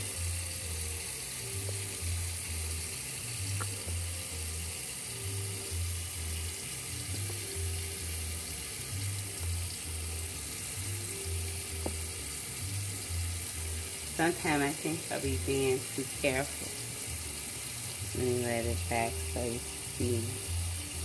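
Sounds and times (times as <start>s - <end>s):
tap water running into sink: 0.0s - 21.0s.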